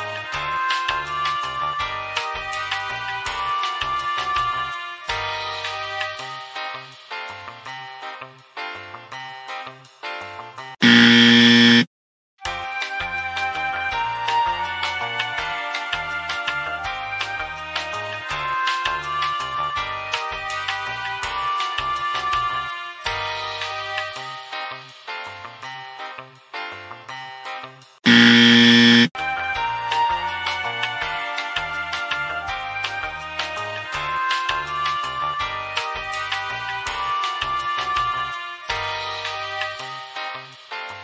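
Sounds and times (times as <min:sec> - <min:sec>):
background music: 0:00.0 - 0:11.0, 0:12.4 - 0:41.0
buzzer steady tone: 0:10.8 - 0:11.9, 0:28.1 - 0:29.1.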